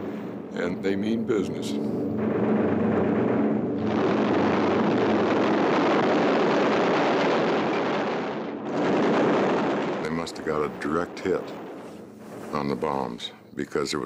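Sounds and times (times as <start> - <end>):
machine-gun fire: 0.0 - 13.2.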